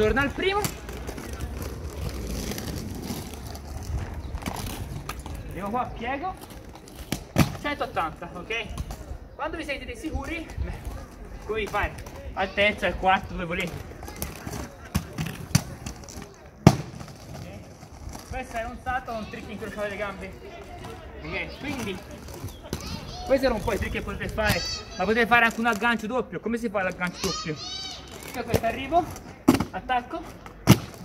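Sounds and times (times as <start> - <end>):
inline skates clacking on stone: 0.0 - 8.0, 8.6 - 9.2, 10.1 - 26.1, 28.0 - 31.0.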